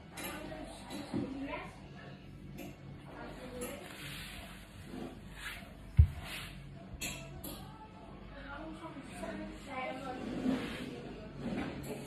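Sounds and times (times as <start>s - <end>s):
rustling on exercise mat: 3.8s - 6.7s.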